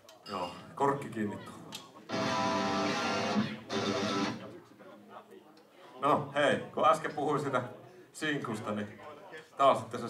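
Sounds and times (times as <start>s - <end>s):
electric guitar chords ringing: 2.1s - 4.4s.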